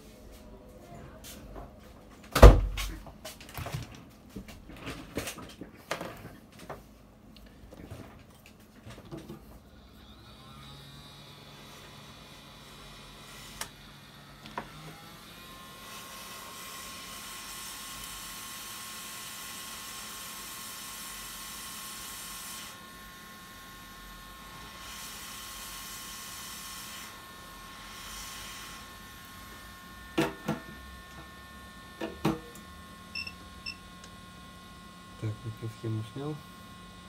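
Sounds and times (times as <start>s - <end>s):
hot air blower hissing: 11.2s - 37.0s.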